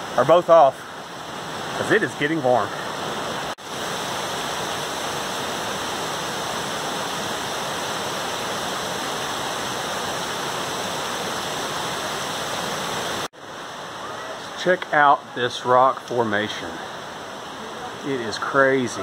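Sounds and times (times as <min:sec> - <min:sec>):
waterfall rushing: 0:00.0 - 0:19.0.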